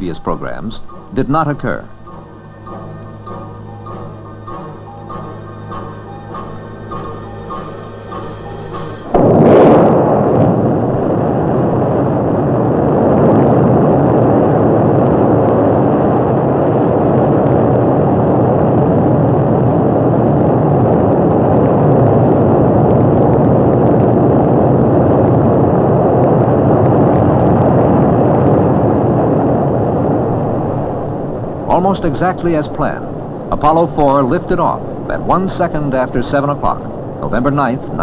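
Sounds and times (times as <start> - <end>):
rocket engines rumbling: 0.0 - 38.0.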